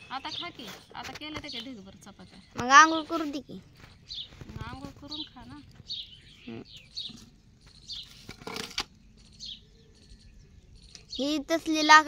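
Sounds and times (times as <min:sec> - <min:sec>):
small birds chirping: 0:00.0 - 0:12.0
woman speaking softly: 0:04.5 - 0:05.7.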